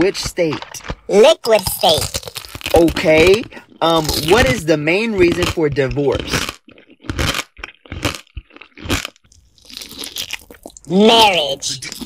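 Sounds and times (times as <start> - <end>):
crunchy eating and chewing: 0.0 - 12.0.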